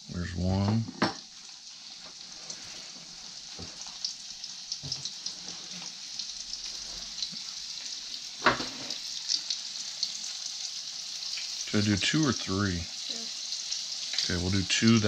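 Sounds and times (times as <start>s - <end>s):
fish fillets sizzling in oil: 0.0s - 15.0s.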